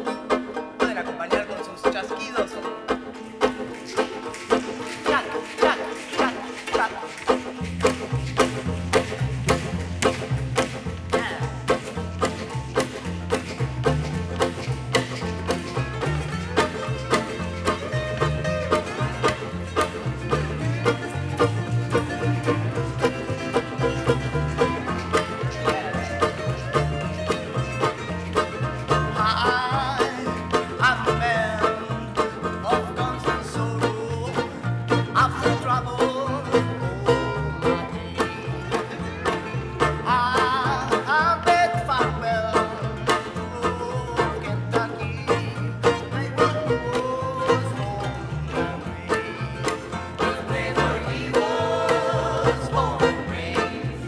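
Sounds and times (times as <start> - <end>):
acoustic bluegrass band playing: 0.0 - 54.0
people singing: 24.6 - 27.4, 44.0 - 54.0.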